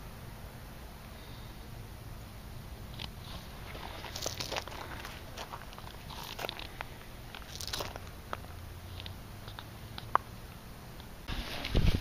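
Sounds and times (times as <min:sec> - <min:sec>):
footsteps on gravel and dry leaves: 0:03.1 - 0:09.2.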